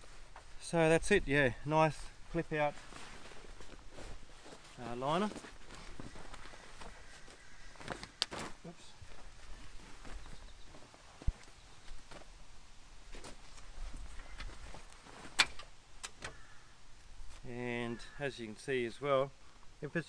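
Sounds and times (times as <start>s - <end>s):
fabric rustling: 2.2s - 7.2s
sharp clicks and knocks: 15.3s - 16.4s.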